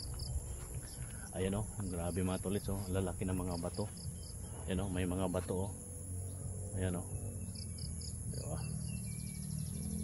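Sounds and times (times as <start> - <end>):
insects trilling high-pitched: 0.0 - 10.0.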